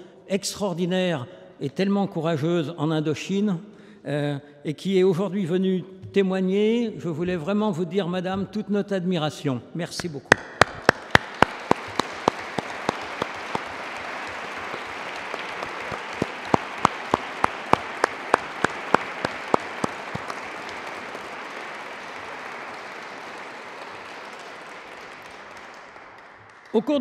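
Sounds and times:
loud single claps close by: 10.0s - 23.2s
audience applauding: 10.3s - 27.0s.

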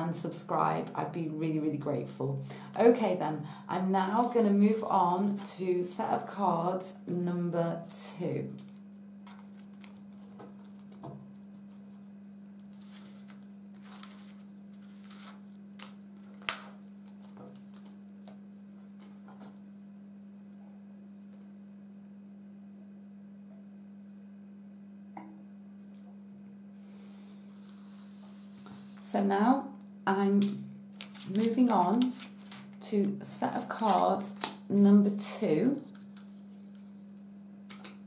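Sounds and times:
steady low hum: 0.0s - 38.0s
cards clicking and tapping: 8.7s - 11.2s, 15.8s - 18.4s, 30.4s - 32.8s, 37.7s - 38.0s.

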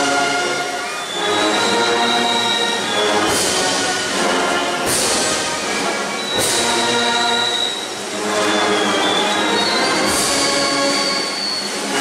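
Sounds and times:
brass band playing a slow march: 0.0s - 12.0s
cymbal crash: 2.8s - 12.0s.

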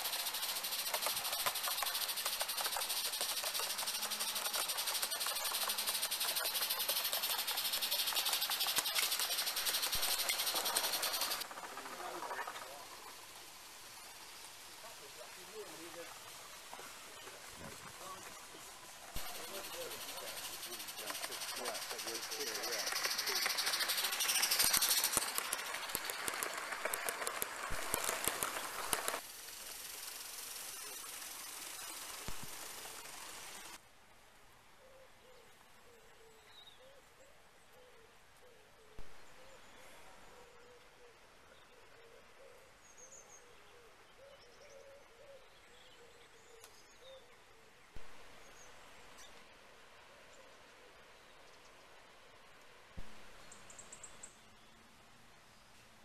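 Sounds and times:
high bird chirps: 0.0s - 11.4s
model steam locomotive running: 0.0s - 13.6s, 14.8s - 33.8s
steam hissing: 0.0s - 33.8s.

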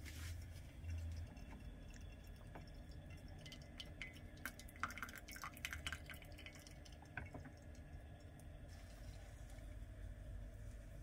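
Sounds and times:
coffee dripping into a mug: 0.3s - 8.7s.

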